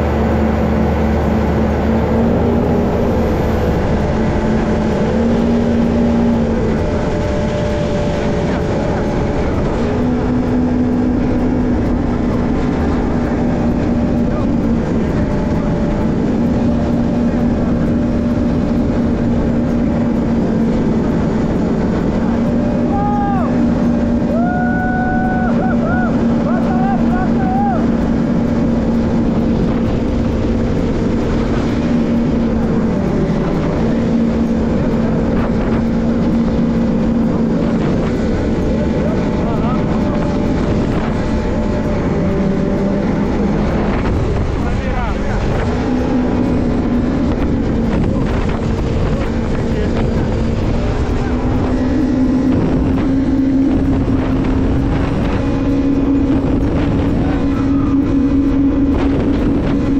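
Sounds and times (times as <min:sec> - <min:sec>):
jet ski engine running: 0:00.0 - 0:59.9
water and wind noise: 0:00.0 - 0:59.9.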